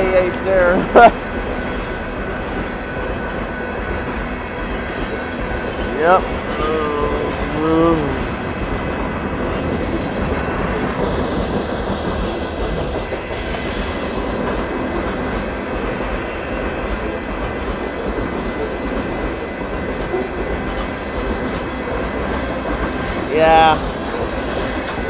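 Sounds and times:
train wheels on rail: 0.0 - 25.0.

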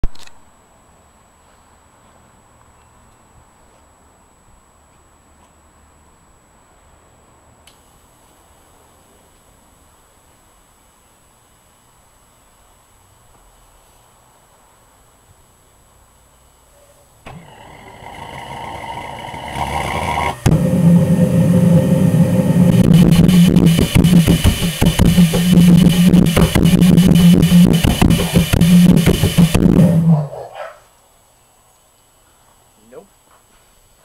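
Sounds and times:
pulse-jet engine buzzing: 17.3 - 30.4
hum: 17.3 - 30.6.

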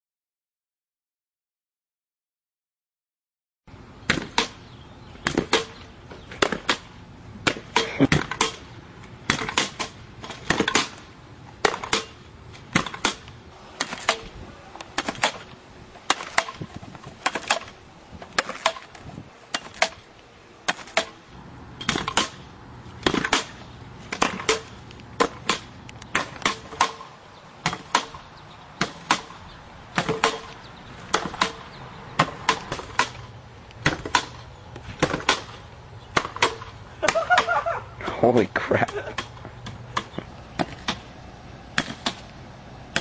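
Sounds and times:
pogo stick landing knocks: 23.0 - 23.5.

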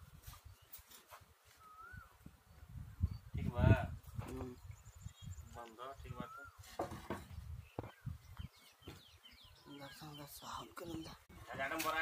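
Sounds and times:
bird whistle: 1.6 - 2.1.

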